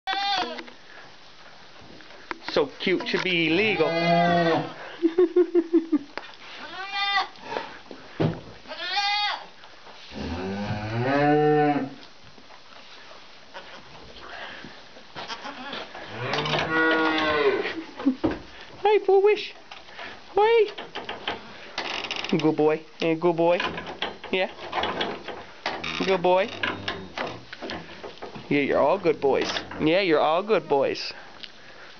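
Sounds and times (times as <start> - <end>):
young goat bleating: 0.1 - 0.6, 6.6 - 7.4, 8.7 - 9.5, 15.3 - 15.8.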